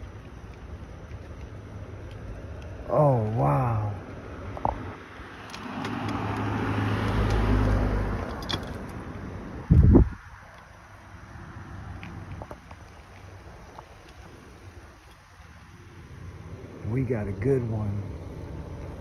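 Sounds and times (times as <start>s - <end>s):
car driving past: 3.6s - 8.4s.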